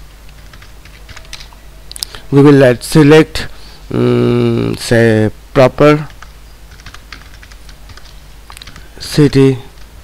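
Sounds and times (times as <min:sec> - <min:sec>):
computer keyboard clicks: 0:00.3 - 0:01.5, 0:06.1 - 0:08.9.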